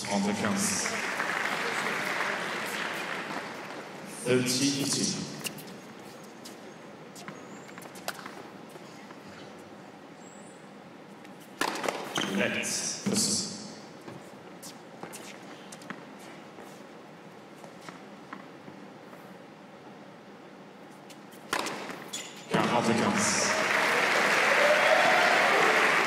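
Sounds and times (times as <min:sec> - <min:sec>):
tennis ball bouncing on court: 0:11.5 - 0:12.4, 0:21.4 - 0:22.8
racket striking ball: 0:11.6 - 0:12.4, 0:21.5 - 0:22.1.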